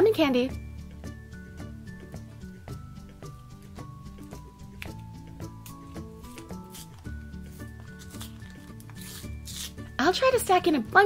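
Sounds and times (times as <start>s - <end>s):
background music: 0.0s - 11.0s
paper wrapper rustling: 5.6s - 9.9s.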